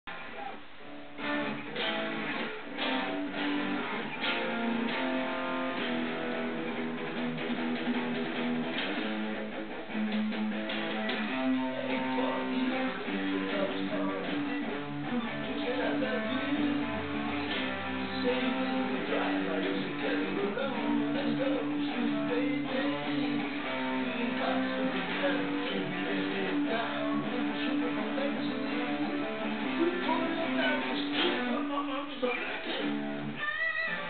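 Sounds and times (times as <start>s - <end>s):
electric guitar melody: 0.1s - 34.0s.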